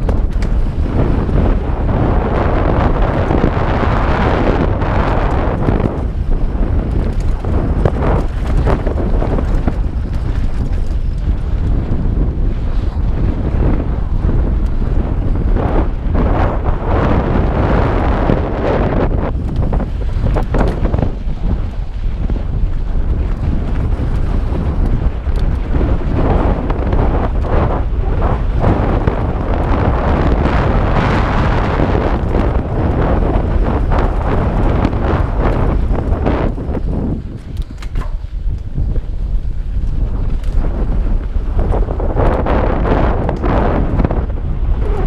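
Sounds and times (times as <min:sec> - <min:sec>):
bike rattling over bumps: 0:00.0 - 0:45.0
bike tyres rolling on dirt: 0:00.0 - 0:45.0
wind buffeting microphone: 0:00.0 - 0:45.0.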